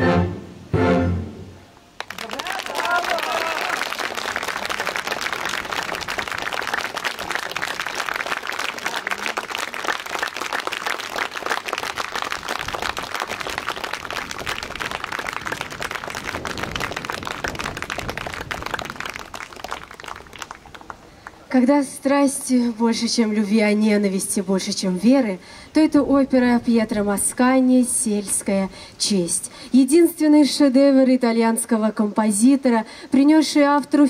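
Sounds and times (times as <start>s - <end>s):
audience applauding: 2.0s - 21.4s.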